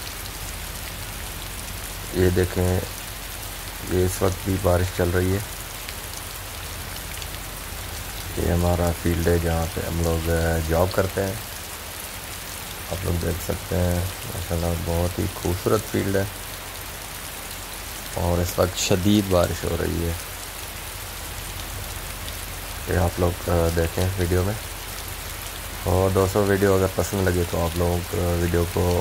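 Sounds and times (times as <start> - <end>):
rain on pavement and vehicle: 0.0 - 29.0.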